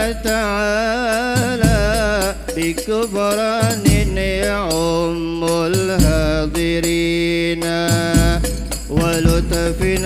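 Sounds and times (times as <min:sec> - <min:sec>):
frame drums: 0:00.0 - 0:10.0.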